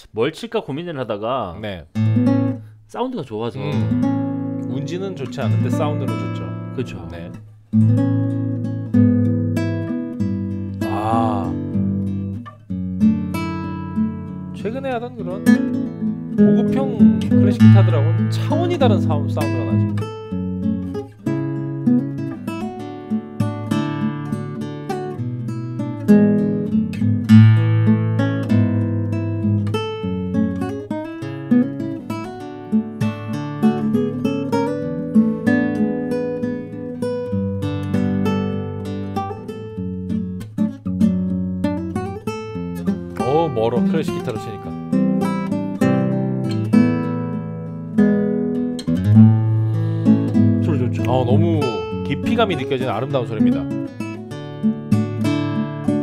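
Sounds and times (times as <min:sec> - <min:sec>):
classical guitar fingerpicked: 0:01.9 - 0:02.9, 0:03.5 - 0:56.0.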